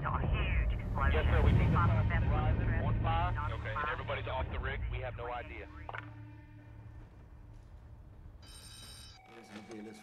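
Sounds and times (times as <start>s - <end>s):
low steady rumble: 0.0s - 8.5s
telephone ringing: 8.4s - 10.0s.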